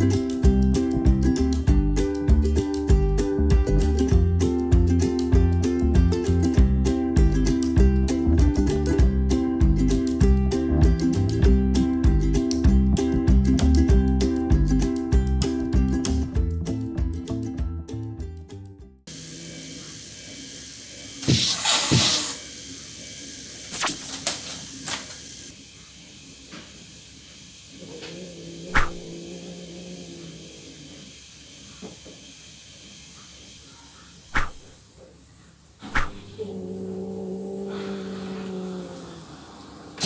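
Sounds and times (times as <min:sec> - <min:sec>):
cat growling low: 0:27.7 - 0:31.2, 0:36.0 - 0:40.0
cats hissing: 0:27.7 - 0:31.2, 0:33.6 - 0:34.8, 0:35.8 - 0:40.0.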